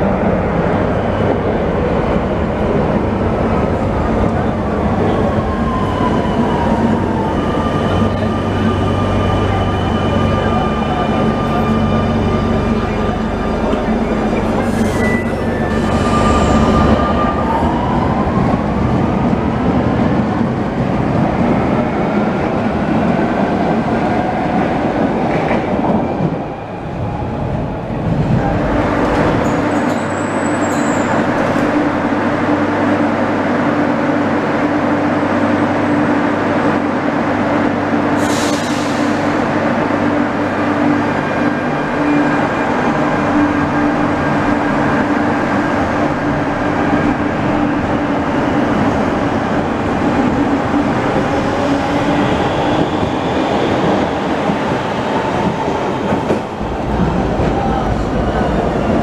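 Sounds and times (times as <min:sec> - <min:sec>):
train wheels rumbling on rails: 0:34.9 - 0:59.0
train starting to move: 0:36.5 - 0:59.0.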